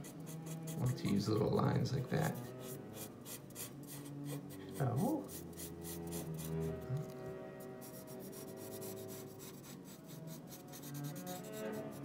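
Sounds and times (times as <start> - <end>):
marker scratching on paper: 0.0 - 1.2, 2.2 - 12.0
music with sustained notes: 0.0 - 12.0.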